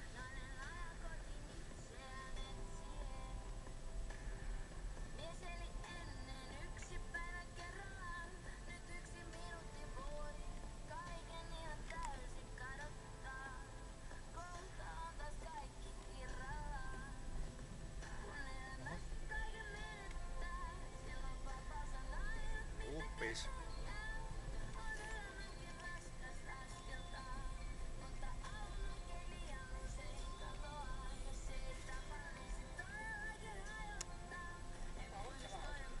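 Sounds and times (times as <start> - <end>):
car radio song with singing: 0.0 - 36.0.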